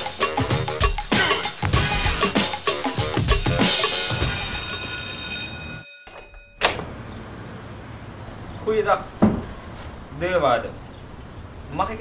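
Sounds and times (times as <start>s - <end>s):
wooden door thump: 9.2s - 9.7s.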